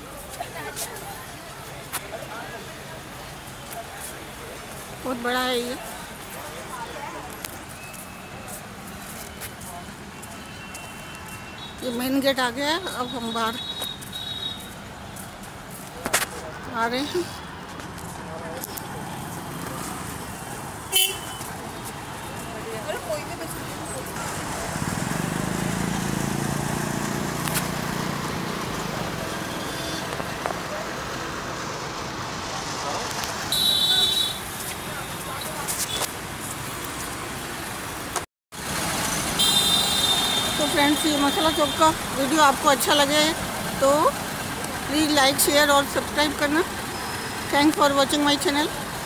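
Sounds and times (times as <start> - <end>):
traffic hum: 0.0 - 49.0
vehicle engine passing: 23.5 - 33.5.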